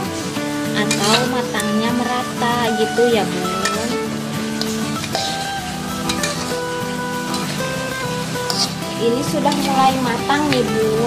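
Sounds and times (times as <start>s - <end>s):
food deep-frying in oil: 0.0s - 11.0s
guitar-led music: 0.0s - 11.0s.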